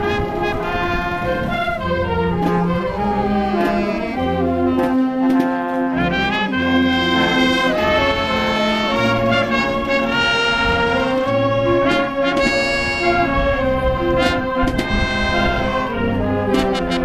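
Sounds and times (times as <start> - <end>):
bass line: 0.0 - 17.0
brass: 0.0 - 17.0
flutes and clarinets melody: 0.0 - 17.0.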